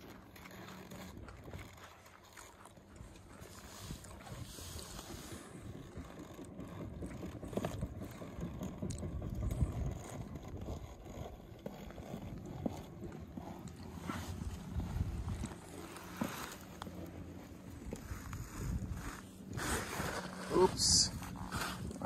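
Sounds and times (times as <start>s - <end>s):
faint scrapes and clicks: 0.0s - 22.0s
wind buffeting microphone: 3.8s - 11.6s, 14.0s - 15.8s, 17.6s - 22.0s.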